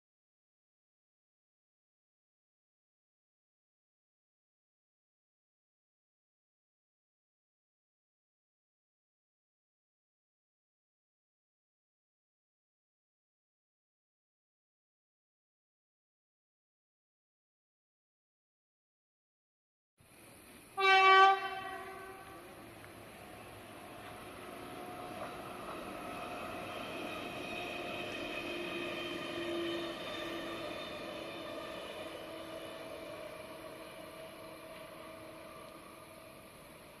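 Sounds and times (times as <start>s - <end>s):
rail noise: 20.0s - 37.0s
train passing with whine: 20.1s - 37.0s
train horn blast: 20.8s - 22.6s.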